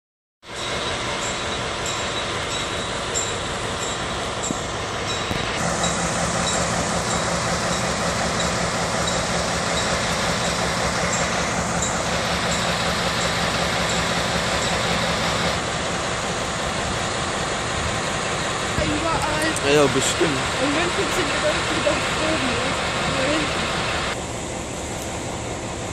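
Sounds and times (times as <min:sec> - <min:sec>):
diesel locomotive engine running: 0:00.4 - 0:25.9.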